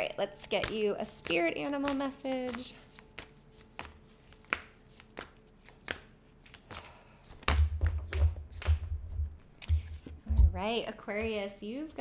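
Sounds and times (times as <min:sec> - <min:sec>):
cards shuffling: 0:00.6 - 0:08.9, 0:09.6 - 0:10.2.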